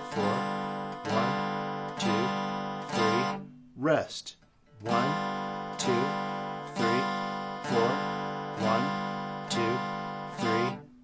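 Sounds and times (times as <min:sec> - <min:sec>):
acoustic guitar strumming chord: 0:00.0 - 0:03.7, 0:04.7 - 0:11.0.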